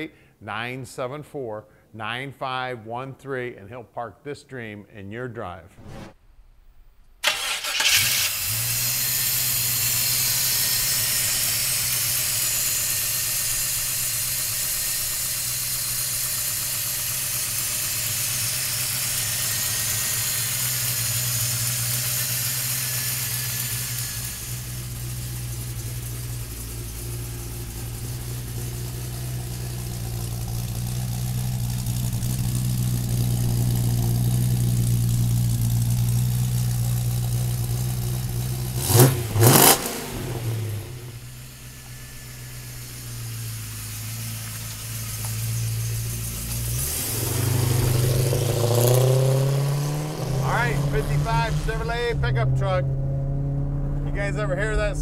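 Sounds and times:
loud hiss: 5.8s - 52.1s
truck engine idling: 7.2s - 52.8s
engine revving: 7.2s - 55.0s.

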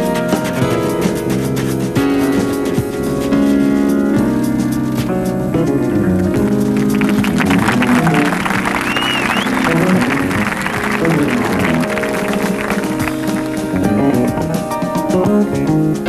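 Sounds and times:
drum kit and percussion: 0.0s - 16.0s
jazz ensemble playing: 0.0s - 16.0s.

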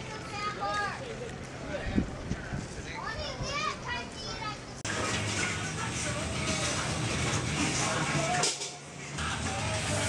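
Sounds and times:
music: 4.9s - 10.0s.

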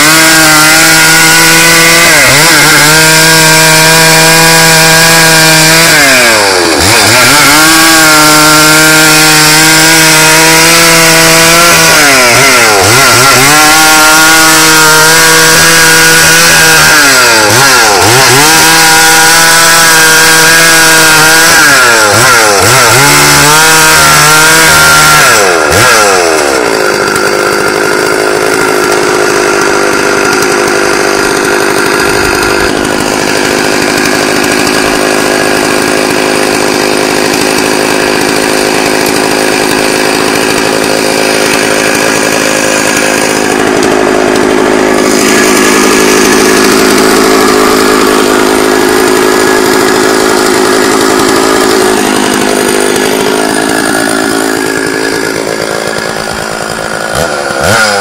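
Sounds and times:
chainsaw cutting log: 0.0s - 58.0s.

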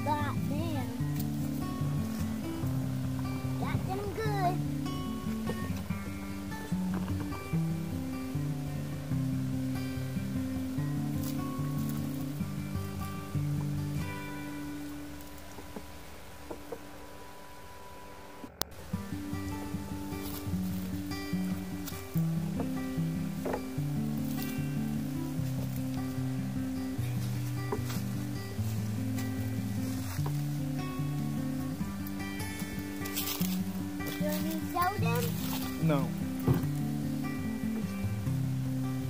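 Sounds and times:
background music with low notes: 0.0s - 39.0s.

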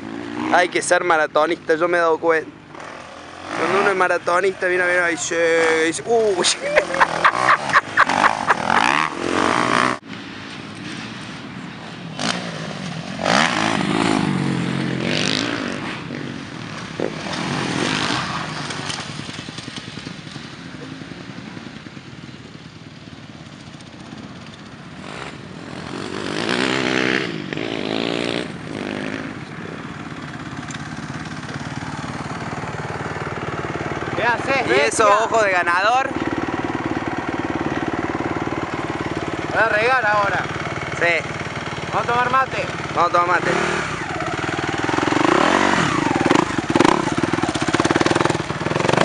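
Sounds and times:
motocross bike engine revving: 0.0s - 10.0s, 12.1s - 22.2s, 23.9s - 49.0s.

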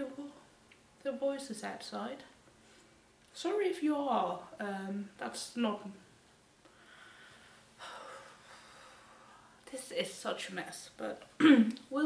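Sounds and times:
noisy exhale: 6.7s - 9.6s.

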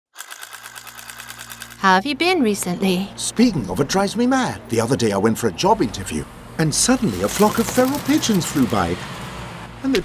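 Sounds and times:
fast mechanical rattle: 0.1s - 1.8s, 7.2s - 8.8s
person speaking: 6.6s - 9.0s.

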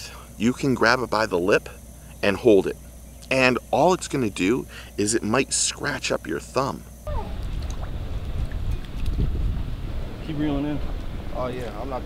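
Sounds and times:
wind buffeting microphone: 7.1s - 12.0s.

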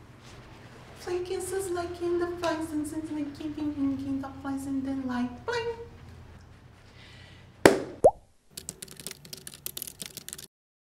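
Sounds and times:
sharp knock: 7.7s - 8.1s.

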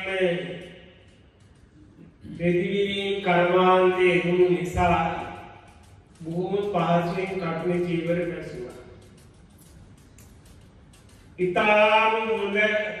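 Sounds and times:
man preaching: 0.0s - 0.8s, 2.3s - 5.5s, 6.2s - 9.0s, 11.4s - 13.0s.

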